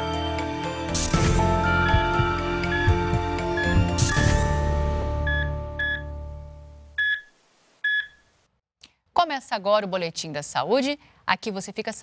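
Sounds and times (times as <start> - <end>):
short electronic beeps: 1.8 - 4.4, 5.3 - 6.1, 7.0 - 8.2.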